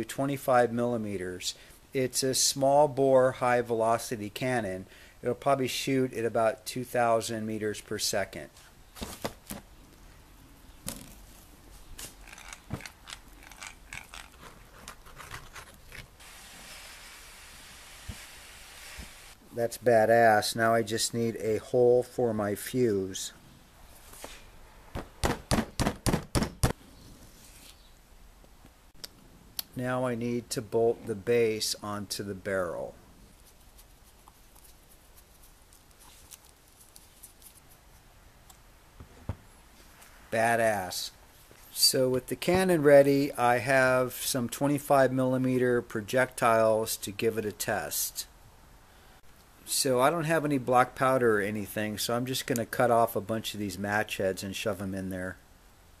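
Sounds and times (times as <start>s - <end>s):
faint hiss: 1.2s - 9.1s, 16.2s - 22.1s
hand drill clicking and scraping: 12.0s - 16.1s.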